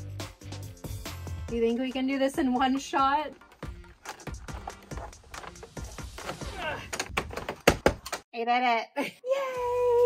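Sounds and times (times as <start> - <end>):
background music: 0.0 - 7.1.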